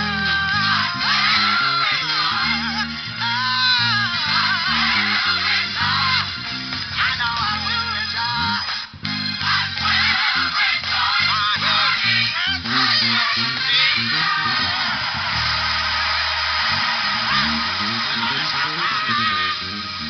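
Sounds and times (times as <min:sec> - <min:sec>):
electric bass playing: 0:00.0 - 0:20.0
recorded song: 0:00.0 - 0:20.0.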